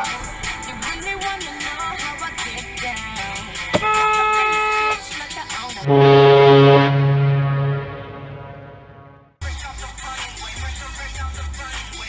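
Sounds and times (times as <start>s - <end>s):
car horn honking: 3.2s - 5.2s, 5.8s - 9.3s
deep air horn blast: 3.8s - 5.1s, 5.8s - 9.4s.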